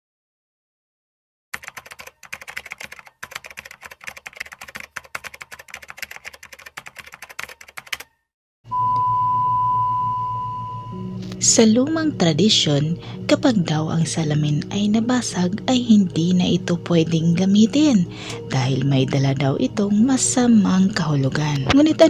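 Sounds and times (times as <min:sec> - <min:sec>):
rapid typing clicks: 0:01.6 - 0:08.1
single-pitched beep tone: 0:08.7 - 0:11.2
low hum: 0:08.7 - 0:13.8.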